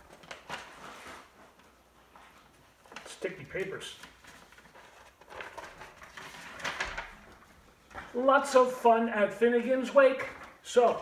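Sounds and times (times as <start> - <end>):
paper rustling: 0.0 - 8.3.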